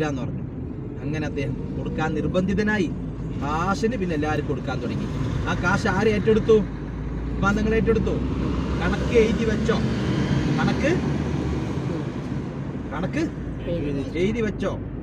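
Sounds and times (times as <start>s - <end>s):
car engine rumble: 0.0s - 15.0s
road noise: 0.0s - 15.0s
people talking: 10.6s - 11.0s, 12.9s - 14.8s.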